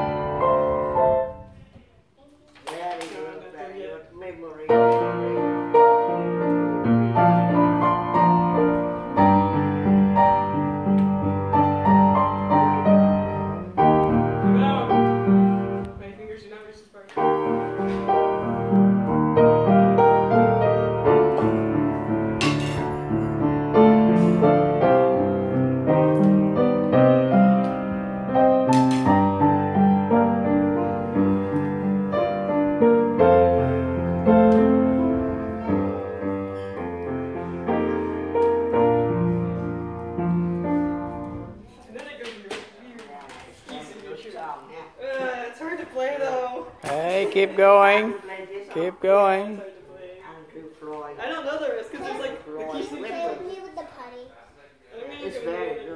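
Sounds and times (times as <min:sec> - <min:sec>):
upright piano playing: 0:00.0 - 0:01.5, 0:04.5 - 0:16.1, 0:17.2 - 0:41.7.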